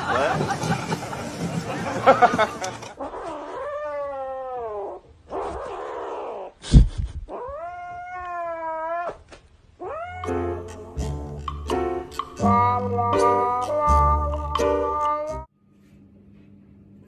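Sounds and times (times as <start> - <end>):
cat yowling: 3.0 - 5.0, 7.3 - 9.2, 9.8 - 10.7
music: 10.2 - 15.5.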